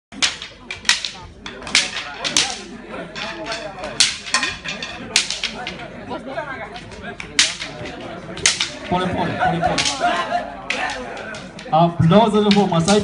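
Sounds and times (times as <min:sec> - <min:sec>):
wooden sticks cracking together: 0:00.1 - 0:05.9, 0:06.7 - 0:11.8, 0:12.4 - 0:13.0
voices: 0:00.2 - 0:13.0.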